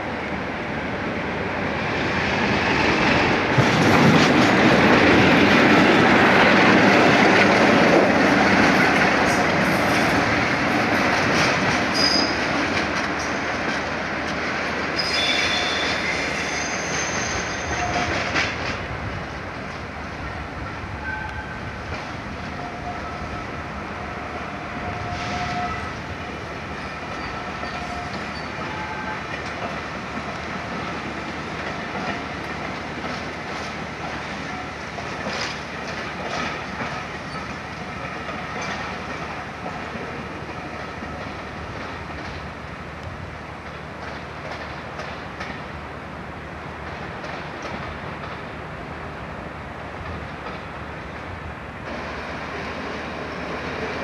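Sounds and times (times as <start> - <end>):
train wheel and rail noise: 0.0 - 54.0
high-pitched wheel squeals: 11.9 - 12.4, 15.0 - 18.2.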